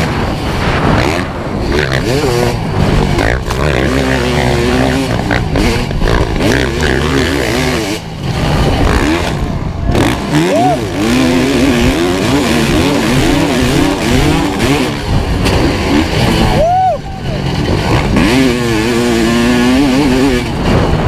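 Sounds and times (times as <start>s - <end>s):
motorcycle engine revving: 0.0s - 21.0s
track noise: 0.0s - 21.0s
wind: 0.0s - 21.0s.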